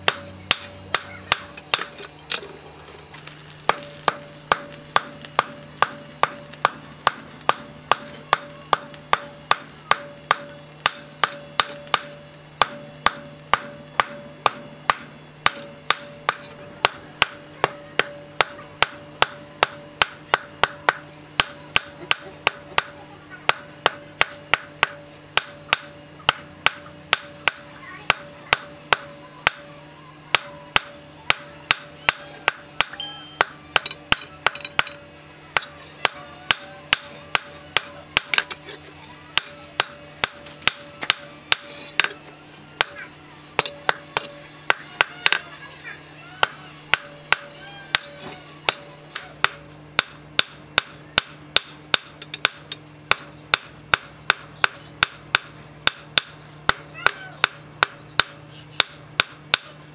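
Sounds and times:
hammer blows on anvil: 0:00.0 - 0:02.5, 0:03.2 - 0:42.2, 0:42.8 - 0:45.5, 0:46.4 - 0:59.8
metal ringing tone: 0:00.0 - 0:45.6, 0:46.4 - 0:59.8.

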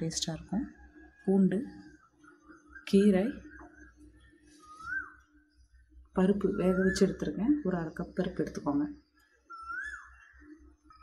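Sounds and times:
high swooping whistle: 0:04.6 - 0:05.2, 0:09.5 - 0:10.0.

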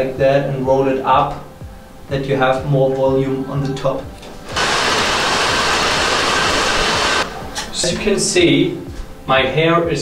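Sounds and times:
hair dryer blowing: 0:04.4 - 0:07.3.

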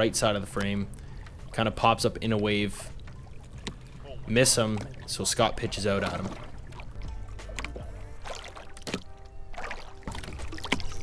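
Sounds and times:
faint background music: 0:00.0 - 0:11.0
water lapping against boat hull: 0:00.0 - 0:11.0.

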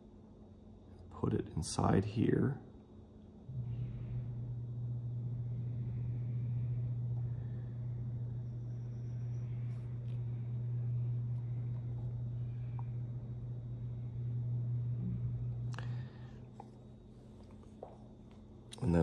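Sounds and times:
steady low motor hum: 0:00.0 - 0:19.0.

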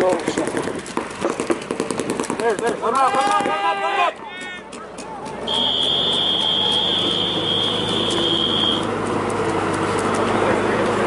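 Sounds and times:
constant noisy background: 0:00.0 - 0:11.0
high electronic buzzer tone: 0:05.5 - 0:08.8.

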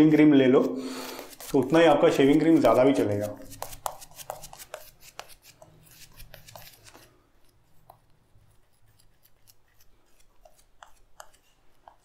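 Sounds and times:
shaving brush scratching on face: 0:00.0 - 0:07.1.

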